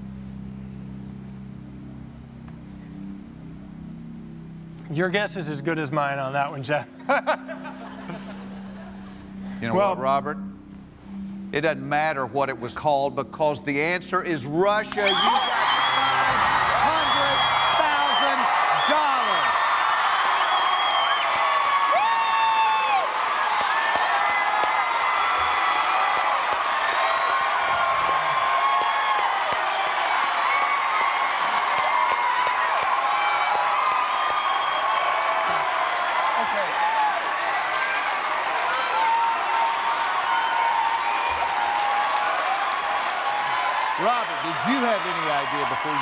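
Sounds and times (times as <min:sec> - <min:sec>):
audience applauding: 0:14.9 - 0:46.0
shouts and whoops: 0:14.9 - 0:46.0.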